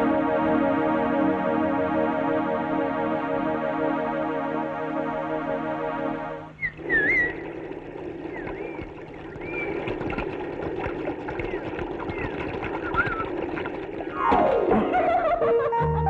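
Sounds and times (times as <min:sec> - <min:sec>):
background music: 0:00.0 - 0:06.6, 0:14.2 - 0:16.0
falling musical sweep: 0:00.0 - 0:06.6, 0:14.2 - 0:16.0
whistled chirps: 0:06.6 - 0:07.4, 0:08.3 - 0:09.8, 0:12.1 - 0:13.3.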